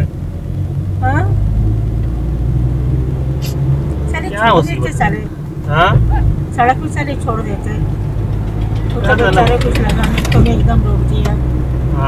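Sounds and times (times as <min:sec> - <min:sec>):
car engine drone: 0:00.0 - 0:12.0.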